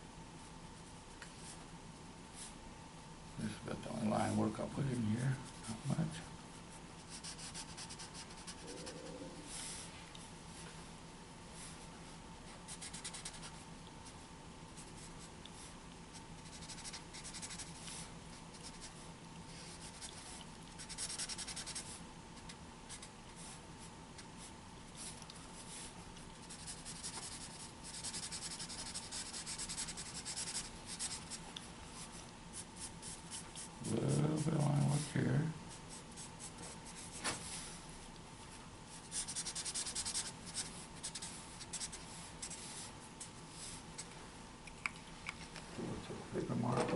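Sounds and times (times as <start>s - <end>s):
felt-tip marker scratching on paper: 7.0s - 9.0s, 12.7s - 13.6s, 16.4s - 17.8s, 20.8s - 21.9s, 26.4s - 31.4s, 32.5s - 35.2s, 39.0s - 42.6s.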